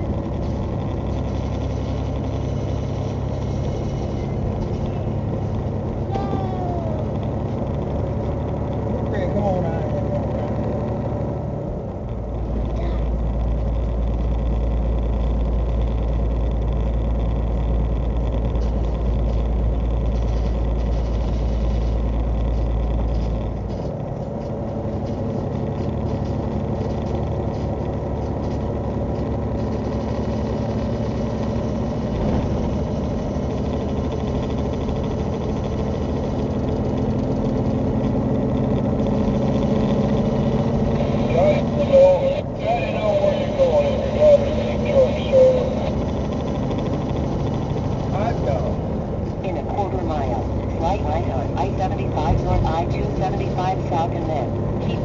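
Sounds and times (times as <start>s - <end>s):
deep low rumble: 0.0s - 55.0s
truck engine and road drone: 0.0s - 55.0s
person speaking: 41.1s - 46.0s.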